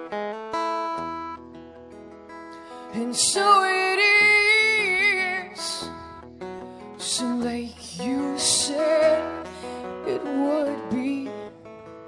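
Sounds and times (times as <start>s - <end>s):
guitar: 0.0s - 12.0s
woman singing with vibrato: 2.9s - 6.1s, 7.0s - 11.5s.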